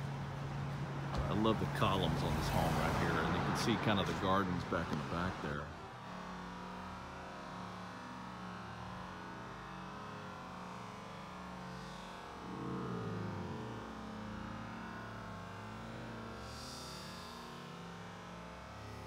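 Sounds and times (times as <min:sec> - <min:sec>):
low mechanical hum: 0:04.2 - 0:19.0.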